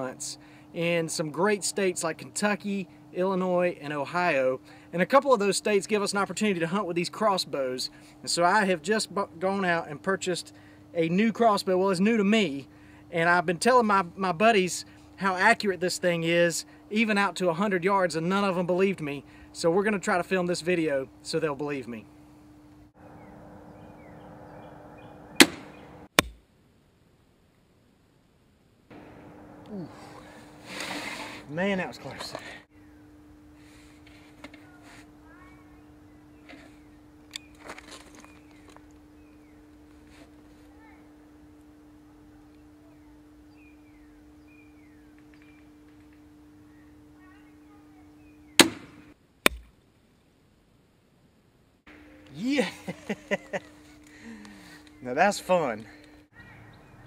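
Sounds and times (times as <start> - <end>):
steady low hum: 0.0 - 56.6
arrow hitting target: 25.4 - 26.4, 48.6 - 49.7
crossbow firing crack: 25.4 - 26.4, 28.9 - 31.5, 48.6 - 49.7
faint chirps: 29.0 - 30.8.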